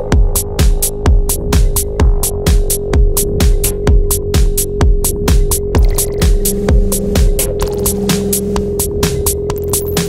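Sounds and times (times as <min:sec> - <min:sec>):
hi-hats ticking: 0:00.0 - 0:10.0
kick drum: 0:00.0 - 0:10.0.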